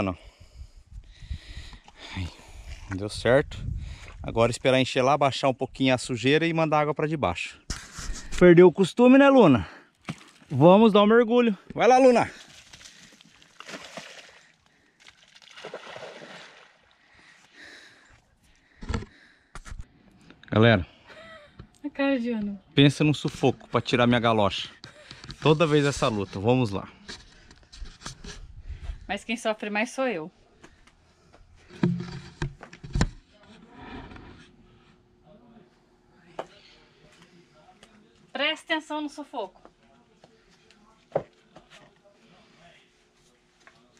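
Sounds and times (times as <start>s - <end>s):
dog splashing through water: 12.4s - 16.8s
camera handling knocks: 31.7s - 33.2s.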